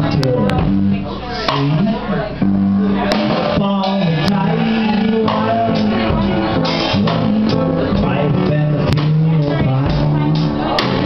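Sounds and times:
drums: 0.0 - 11.0
man singing: 0.0 - 11.0.

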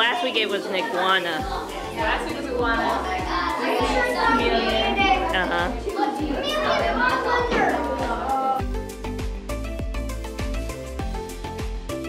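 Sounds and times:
children chattering: 0.0 - 8.6.

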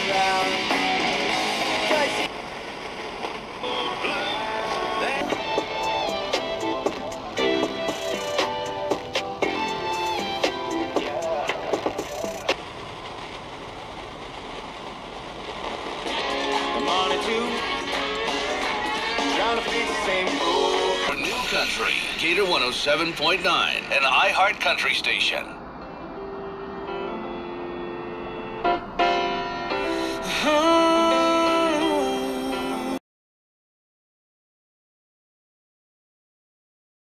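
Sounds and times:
country music through small speaker: 0.0 - 2.3, 3.6 - 12.4, 16.1 - 23.4, 29.8 - 33.0
radio hiss: 0.0 - 25.6
radio voice through static: 1.8 - 2.3, 3.7 - 5.4, 10.9 - 12.6, 16.7 - 17.9, 21.0 - 25.6.

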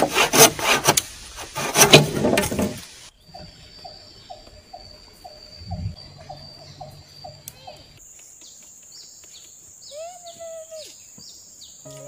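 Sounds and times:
insect drone: 2.7 - 12.0.

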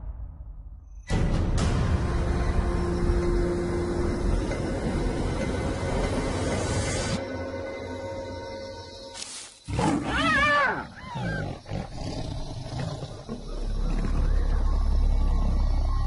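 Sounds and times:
loud animal cry: 9.7 - 14.5.

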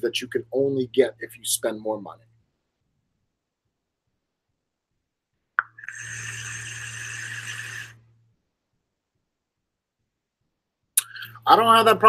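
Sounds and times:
air hissing through vape: 5.6 - 8.0.

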